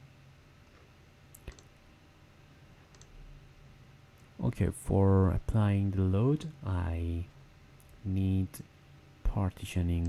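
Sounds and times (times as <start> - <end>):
computer mouse click: 0.7 - 1.7, 2.9 - 3.2.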